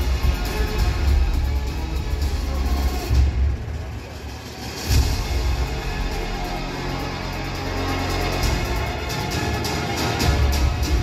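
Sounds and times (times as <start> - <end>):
intro music over sound system: 0.0 - 11.0.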